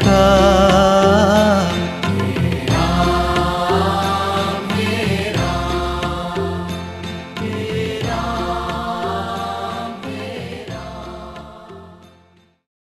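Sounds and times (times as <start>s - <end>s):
devotional music: 0.0s - 12.6s.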